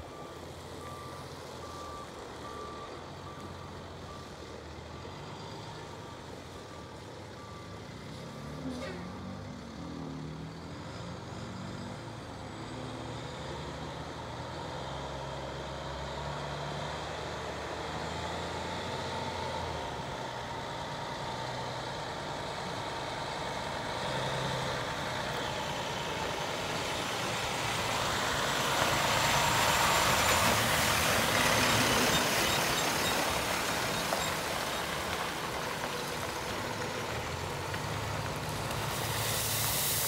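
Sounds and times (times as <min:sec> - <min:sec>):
diesel truck engine driving: 0:00.0 - 0:40.0
steady hiss: 0:38.8 - 0:40.0.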